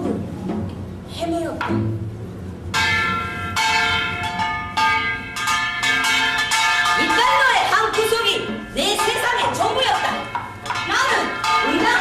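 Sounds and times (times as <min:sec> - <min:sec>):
bell-like metal percussion strokes: 0:02.7 - 0:12.0.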